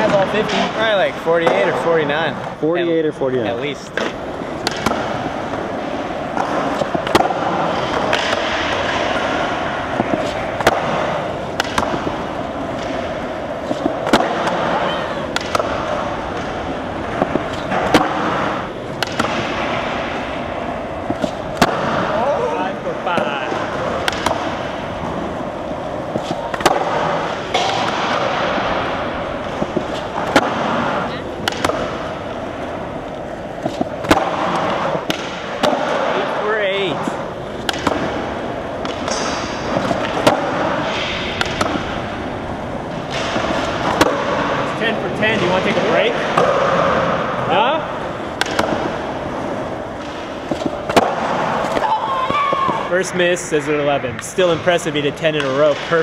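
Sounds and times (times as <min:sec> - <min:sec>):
skateboard wheels rolling on concrete: 0:00.0 - 0:56.0
skateboard pops and landing slaps: 0:04.0 - 0:05.1, 0:06.4 - 0:09.3, 0:10.0 - 0:12.1, 0:13.7 - 0:16.5, 0:17.1 - 0:20.0, 0:24.0 - 0:24.5, 0:29.4 - 0:32.1, 0:37.6 - 0:38.2, 0:48.4 - 0:48.9.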